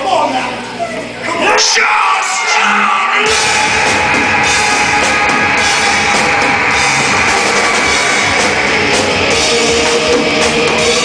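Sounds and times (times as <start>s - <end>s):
live rock band playing: 2.5s - 11.0s.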